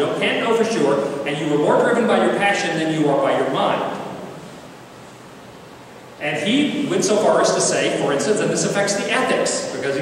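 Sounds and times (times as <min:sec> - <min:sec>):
man's voice echoing: 0:00.0 - 0:04.3, 0:06.2 - 0:10.0
room tone hiss: 0:00.0 - 0:10.0.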